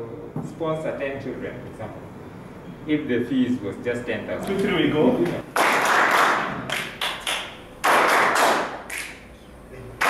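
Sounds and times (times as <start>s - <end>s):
group clapping: 5.4s - 9.2s.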